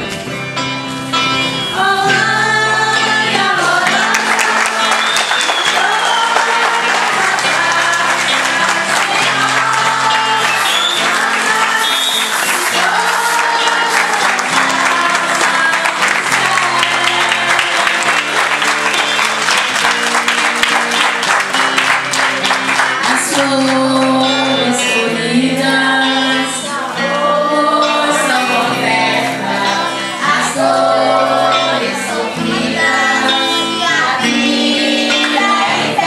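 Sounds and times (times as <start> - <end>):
accompanying music: 0.0 - 36.0
crowd singing a hymn: 1.2 - 36.0
rhythmic clapping: 3.0 - 25.0, 27.8 - 36.0.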